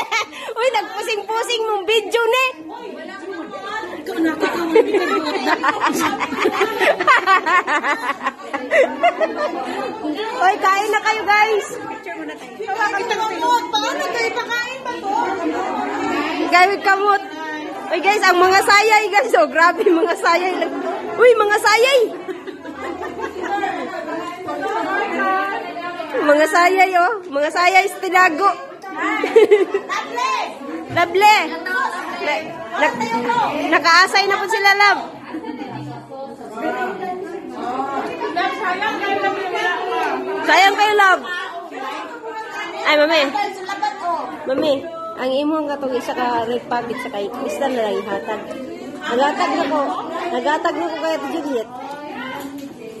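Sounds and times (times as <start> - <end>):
people chattering: 0.0 - 53.0.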